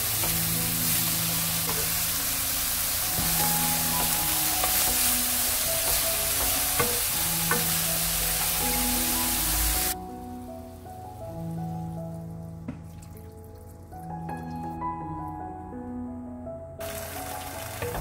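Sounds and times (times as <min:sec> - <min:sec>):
root sizzling in oil: 0:00.0 - 0:12.3, 0:16.8 - 0:18.0.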